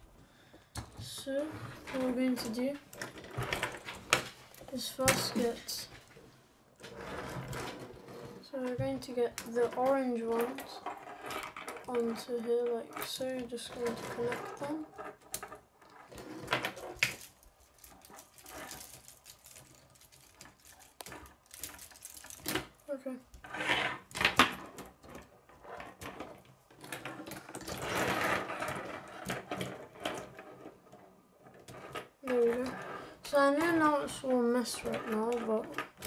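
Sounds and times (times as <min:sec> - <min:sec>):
plastic pieces rustling: 0:13.8 - 0:22.9
plastic pieces clicking together: 0:16.5 - 0:22.9.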